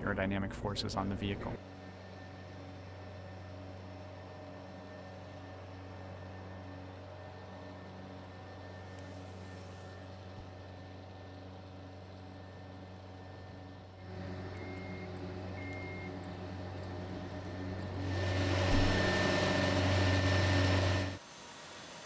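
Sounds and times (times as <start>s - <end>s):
low machinery hum: 0.0s - 21.2s
loud rushing noise: 17.9s - 21.2s.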